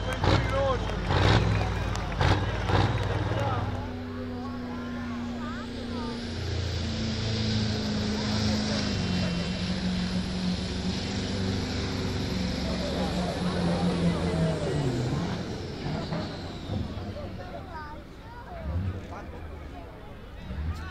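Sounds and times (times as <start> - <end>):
diesel truck engine under load: 0.0 - 20.9.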